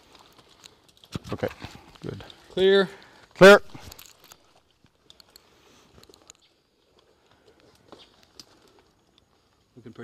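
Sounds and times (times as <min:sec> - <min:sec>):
rope and harness gear clicking: 0:00.0 - 0:10.0.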